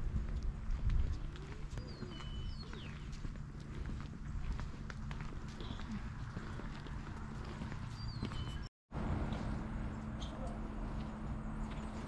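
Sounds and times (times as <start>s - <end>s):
footsteps on wet pavement: 0.0s - 12.0s
wind rumble on microphone: 0.0s - 12.0s.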